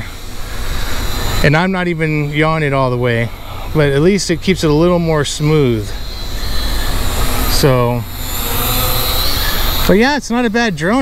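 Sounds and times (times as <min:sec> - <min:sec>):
low rumble: 0:00.0 - 0:10.0
drone propellers whirring: 0:00.0 - 0:11.0
faint high whine: 0:00.0 - 0:11.0.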